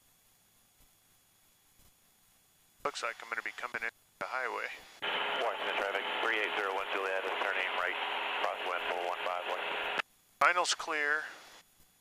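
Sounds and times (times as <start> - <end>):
steady radio hiss: 0.0 - 12.0
man speaking over radio: 2.9 - 11.3.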